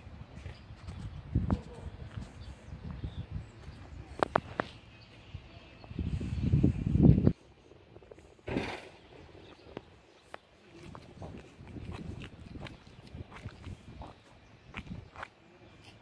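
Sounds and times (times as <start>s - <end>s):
wind rumble on microphone: 0.0s - 10.0s, 10.7s - 15.3s
footsteps on asphalt: 0.3s - 6.0s, 9.4s - 16.0s.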